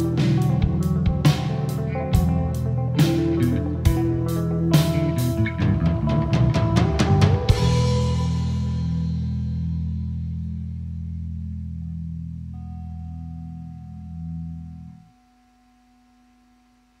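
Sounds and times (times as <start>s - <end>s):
guitar and bass chord ringing: 0.0s - 17.0s.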